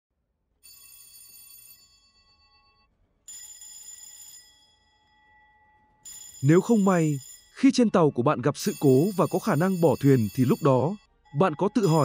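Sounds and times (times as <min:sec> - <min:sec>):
electric alarm bells ringing: 0:00.6 - 0:07.7, 0:08.6 - 0:12.0.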